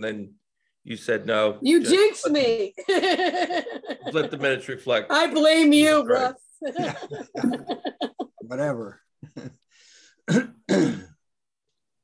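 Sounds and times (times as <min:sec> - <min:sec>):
breath: 0:09.7 - 0:10.2
person clearing throat: 0:10.3 - 0:11.2.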